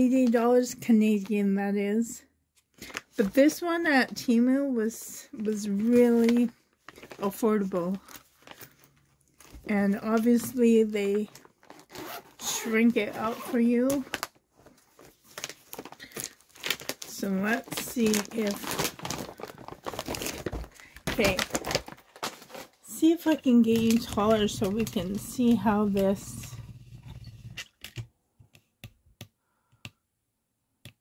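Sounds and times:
plastic packaging crinkling: 5.5s - 13.0s, 13.8s - 26.4s.

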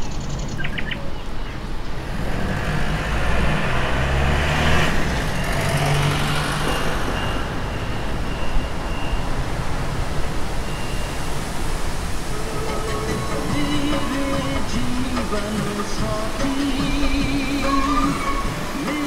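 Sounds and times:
vehicle rumble and tyre noise: 0.0s - 19.0s.

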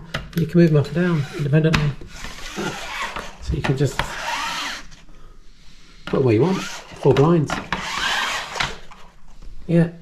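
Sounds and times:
blind scraping along rail: 0.8s - 5.0s, 6.3s - 9.0s.

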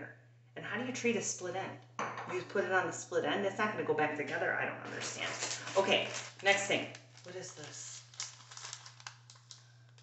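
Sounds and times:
low steady hum: 0.0s - 10.0s
plastic bag crinkling: 4.9s - 10.0s.

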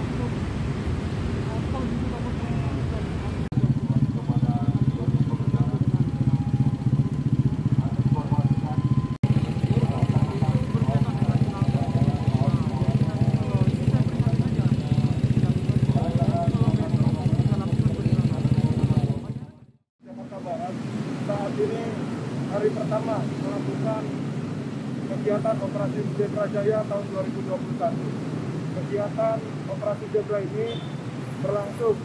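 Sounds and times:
scooter engine idling: 3.5s - 19.7s.

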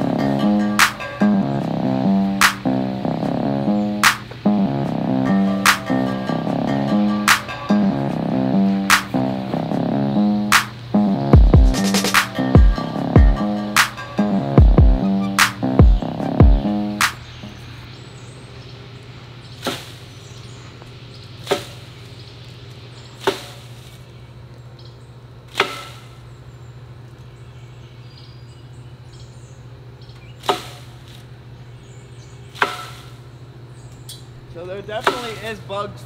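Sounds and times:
wood knocking on tree branch: 35.0s - 35.5s.

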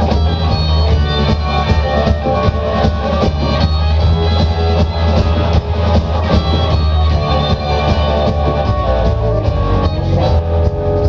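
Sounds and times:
drum kit beat: 0.0s - 11.0s
electric guitars: 0.0s - 11.0s
heavy bass guitar: 0.0s - 11.0s.

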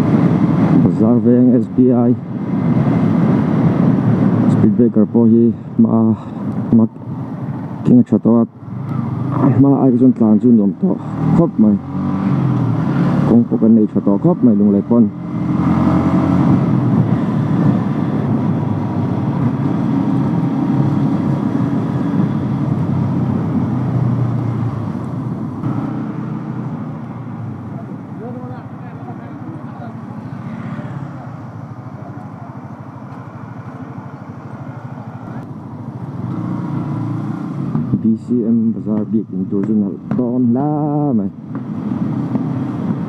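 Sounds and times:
road noise: 0.0s - 43.0s
motorcycle engine: 8.6s - 43.0s.

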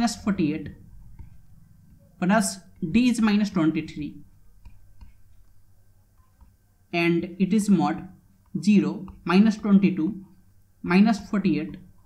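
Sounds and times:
faint low hum: 0.0s - 12.0s
man speaking: 2.2s - 4.2s.

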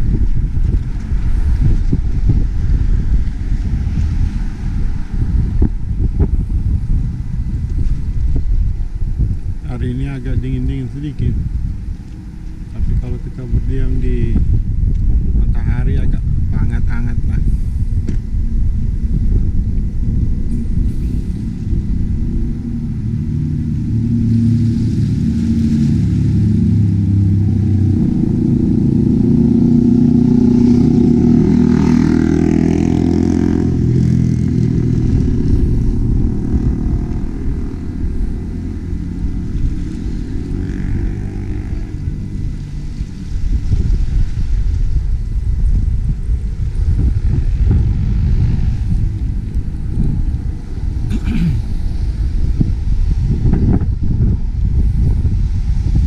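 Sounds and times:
low traffic rumble: 0.0s - 56.0s
vehicle engine passing: 16.6s - 45.5s, 46.6s - 54.2s.

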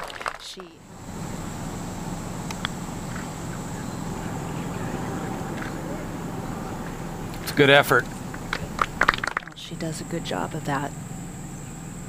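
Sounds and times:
steady low hum: 0.6s - 12.0s
putter striking golf ball: 2.4s - 9.6s.

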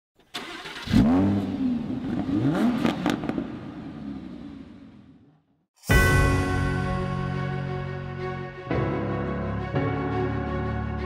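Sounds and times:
car engine revving: 0.4s - 5.2s.

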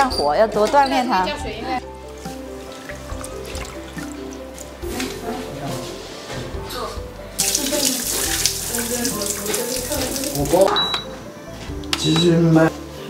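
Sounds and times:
background music: 0.0s - 13.0s
water pouring into a sink: 2.6s - 4.5s, 7.4s - 10.8s.

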